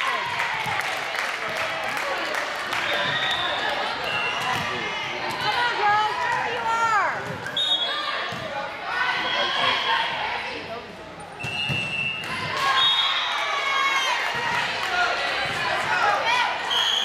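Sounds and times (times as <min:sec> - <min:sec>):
players shouting calls: 0:02.8 - 0:10.6
sneakers squeaking on floor: 0:11.3 - 0:12.2.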